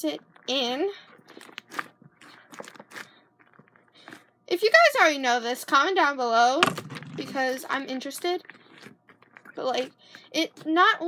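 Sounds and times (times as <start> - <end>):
slime squishing by hand: 6.6 - 11.0.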